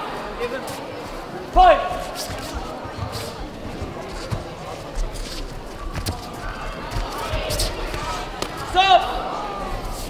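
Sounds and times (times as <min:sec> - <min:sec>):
murmur of a crowd: 0:00.0 - 0:10.0
feet on a mat: 0:01.6 - 0:08.8.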